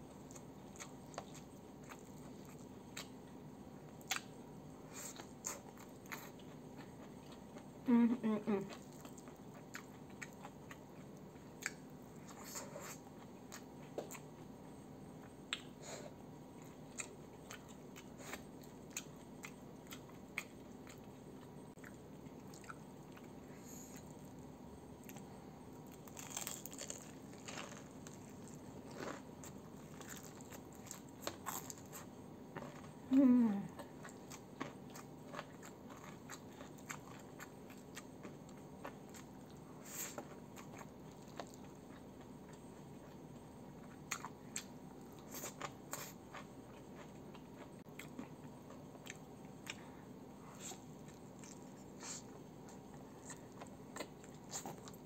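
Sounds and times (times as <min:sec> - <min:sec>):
chewing and crunching: 0:00.1 - 0:07.8, 0:08.6 - 0:33.1, 0:33.7 - 0:55.0
person humming: 0:07.9 - 0:08.7, 0:33.1 - 0:33.8.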